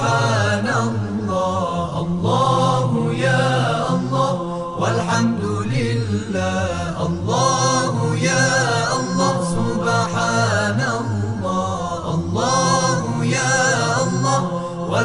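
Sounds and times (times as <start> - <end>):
devotional vocal chant: 0.0 - 15.0.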